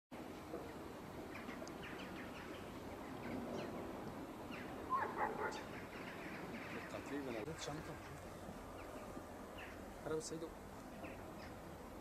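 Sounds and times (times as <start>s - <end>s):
small birds chirping: 0.2s - 12.0s.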